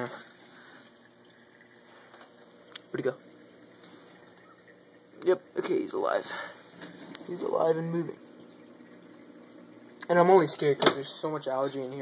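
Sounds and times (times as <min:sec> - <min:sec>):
aquarium filter trickling water: 0:00.0 - 0:12.0.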